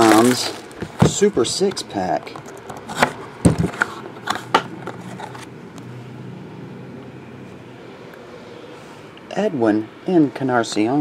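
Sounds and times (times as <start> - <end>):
knocks and taps on card box: 0.8 - 1.2.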